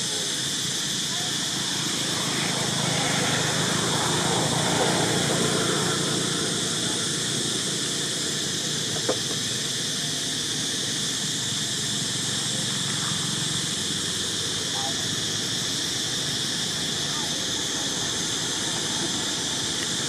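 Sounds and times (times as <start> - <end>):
high-pitched outdoor hiss: 0.0 - 20.0.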